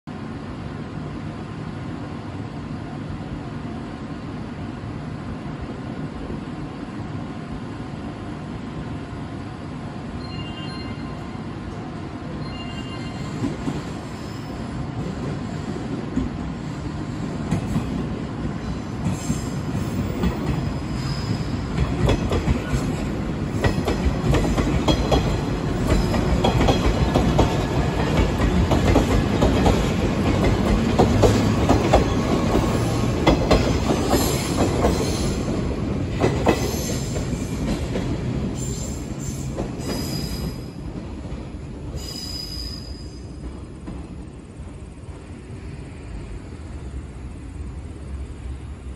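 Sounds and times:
train wheels clicking over rail joints: 19.0s - 42.5s
high wheel squeals: 20.7s - 21.6s, 38.6s - 40.7s, 42.0s - 43.3s.

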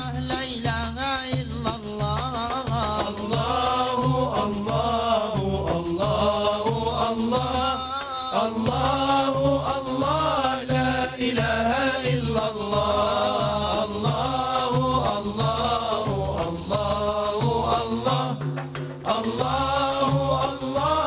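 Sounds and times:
frame drums beating: 0.0s - 21.0s
man singing devotional chant: 0.0s - 21.0s.

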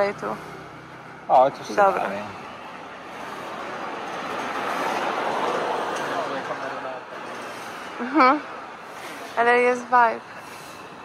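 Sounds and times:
passing vehicles rushing: 0.0s - 11.0s.

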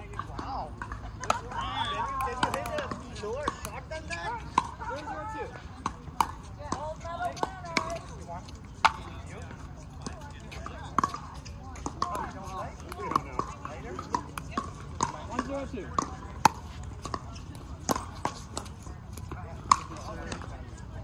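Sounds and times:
voices talking: 0.0s - 21.0s
paddles hitting plastic ball: 2.1s - 3.9s.

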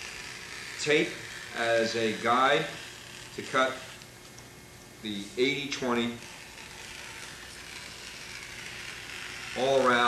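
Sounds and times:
rotary cutter rolling through cloth: 0.0s - 4.4s, 5.1s - 10.0s.

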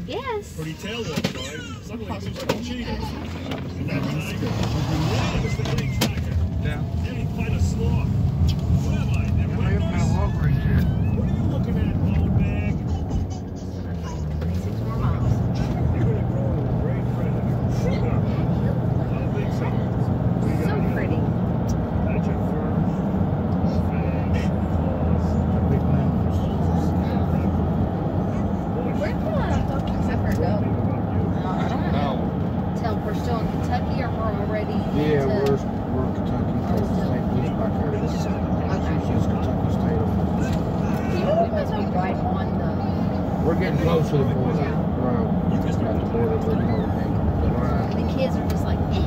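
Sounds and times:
indistinct voices: 0.0s - 49.0s
road and engine rumble in vehicle: 0.0s - 49.0s.

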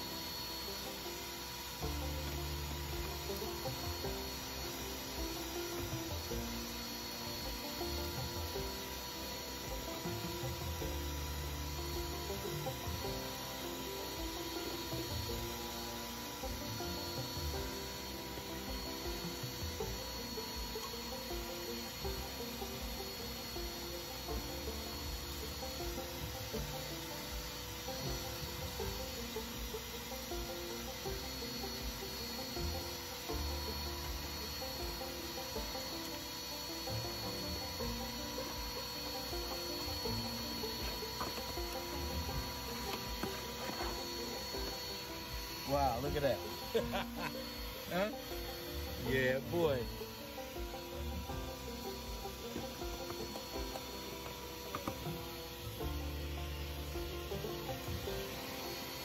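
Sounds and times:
background music: 0.0s - 59.0s
vacuum cleaner motor whine: 0.0s - 59.0s.

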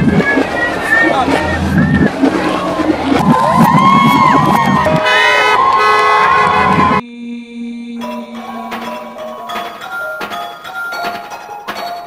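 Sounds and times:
crowd shouting and cheering: 0.0s - 7.0s
steady tone: 0.0s - 11.7s.

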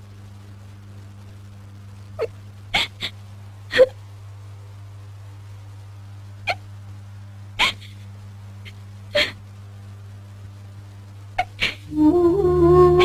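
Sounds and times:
steady low hum: 0.0s - 13.0s
woman sobbing: 9.2s - 9.4s.

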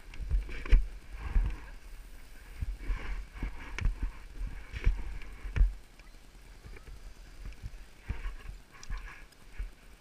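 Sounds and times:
skis scraping over snow: 0.0s - 5.8s.

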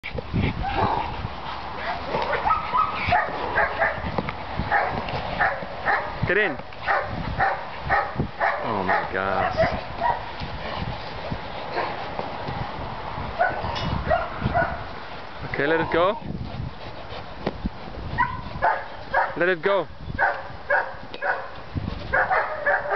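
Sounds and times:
dog barking: 2.3s - 4.0s, 4.7s - 6.2s, 6.8s - 10.2s, 13.4s - 14.8s, 18.2s - 19.4s, 20.2s - 21.5s, 22.1s - 22.9s.

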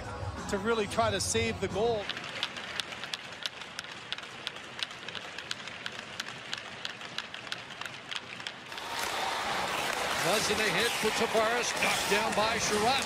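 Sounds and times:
sticks and skates tapping on ice: 2.0s - 13.0s.

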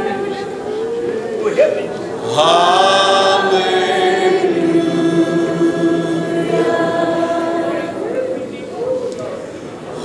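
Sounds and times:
congregation singing: 0.0s - 10.0s.

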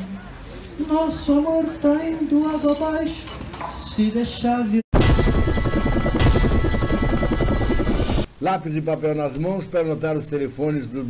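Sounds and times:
helicopter rotor chopping: 5.0s - 8.3s.

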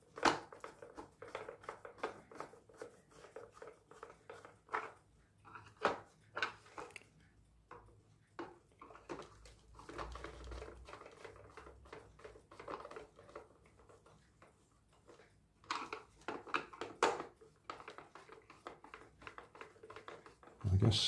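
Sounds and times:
plastic clicks and scrapes: 0.0s - 20.6s.

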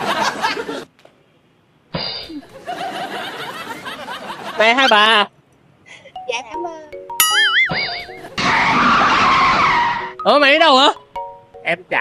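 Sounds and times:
tyre screech skid: 8.4s - 10.2s.

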